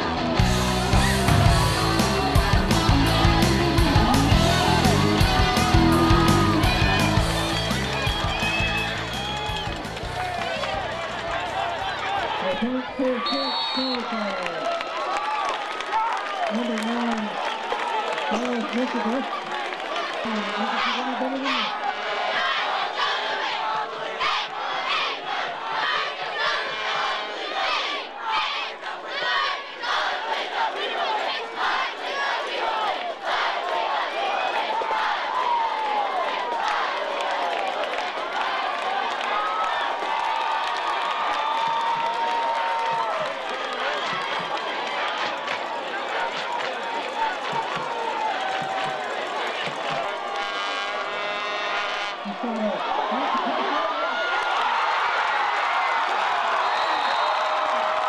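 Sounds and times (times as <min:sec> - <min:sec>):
raised voices: 0:00.0 - 0:09.4, 0:16.0 - 0:17.6, 0:18.3 - 0:36.9, 0:52.2 - 0:54.6
crowd shouting and cheering: 0:00.0 - 0:58.0.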